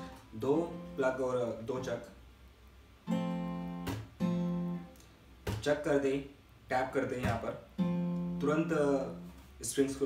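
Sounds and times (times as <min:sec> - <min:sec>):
acoustic guitar chord ringing: 0:00.0 - 0:01.2, 0:03.0 - 0:04.9, 0:07.7 - 0:09.4
hand slapping guitar strings: 0:03.8 - 0:05.8, 0:07.1 - 0:08.3.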